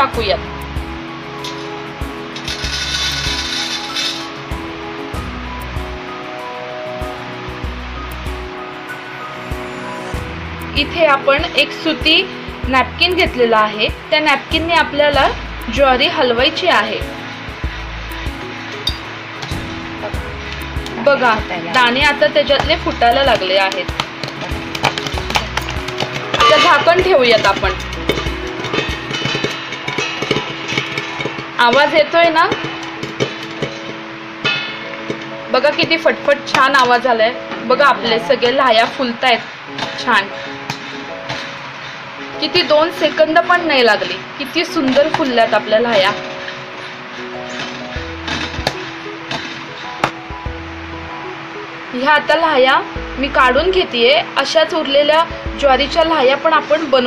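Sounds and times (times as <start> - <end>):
background music: 0.0 - 57.0
grains rattling on metal: 1.4 - 4.5, 21.8 - 37.2, 38.8 - 50.2.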